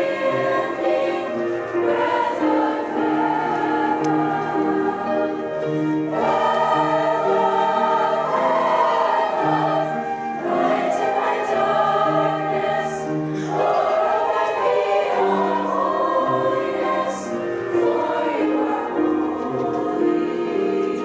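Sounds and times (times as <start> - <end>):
girls' choir singing: 0.0 - 21.0
piano accompaniment: 0.0 - 21.0.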